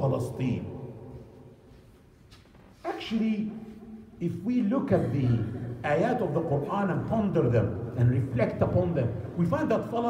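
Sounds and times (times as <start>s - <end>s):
man's amplified voice in large hall: 0.0s - 1.8s, 2.7s - 10.0s.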